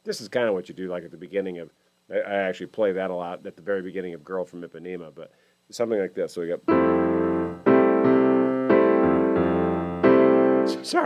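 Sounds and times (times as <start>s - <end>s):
piano chords: 6.7s - 11.0s.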